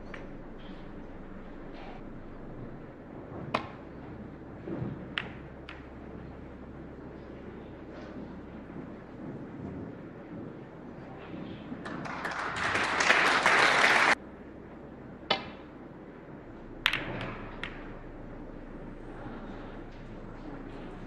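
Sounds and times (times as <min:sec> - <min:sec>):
snooker balls colliding: 0:03.3 - 0:06.1, 0:16.6 - 0:20.7
audience applause: 0:11.8 - 0:14.2
cue tip striking ball: 0:16.7 - 0:18.2.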